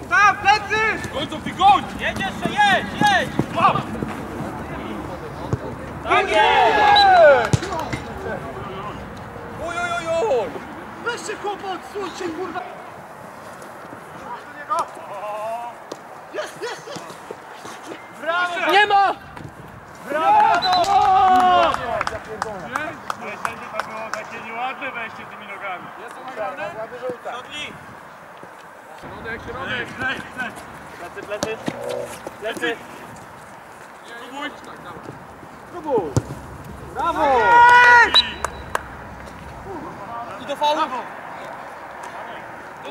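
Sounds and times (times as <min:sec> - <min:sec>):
players shouting: 0:00.0 - 0:27.8, 0:35.7 - 0:42.9
long high celebratory shout: 0:06.1 - 0:07.5, 0:20.1 - 0:22.0, 0:37.0 - 0:38.6
ball kicked thud: 0:36.1 - 0:36.4.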